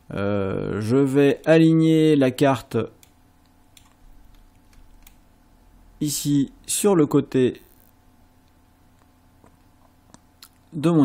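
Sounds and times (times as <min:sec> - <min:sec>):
keyboard and mouse clicking: 0:03.0 - 0:05.2.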